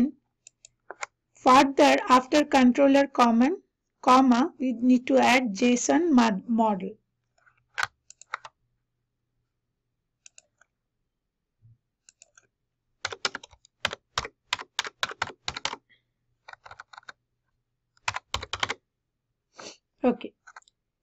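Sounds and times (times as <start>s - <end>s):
computer keyboard typing: 0.5s - 1.1s, 7.7s - 8.6s, 13.0s - 15.8s, 16.4s - 17.2s, 18.0s - 18.8s.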